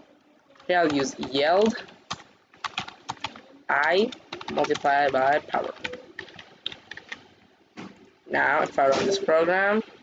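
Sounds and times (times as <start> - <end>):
keyboard keys clicking: 0.6 - 7.3.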